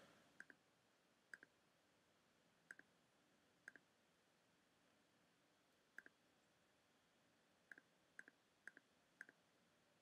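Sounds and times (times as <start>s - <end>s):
computer mouse clicks: 0.4s - 0.6s, 1.3s - 1.6s, 2.7s - 2.9s, 3.7s - 3.9s, 5.9s - 6.2s, 7.7s - 9.4s.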